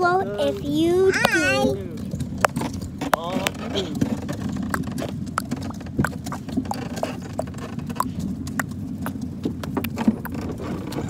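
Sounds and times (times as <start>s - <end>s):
wagon wheels rumbling on pavement: 0.0s - 11.0s
wheels clacking and knocking: 0.0s - 11.0s.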